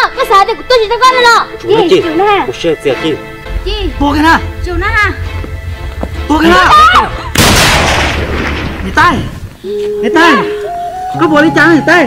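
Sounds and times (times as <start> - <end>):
loud gunshot with echo: 7.4 - 8.9.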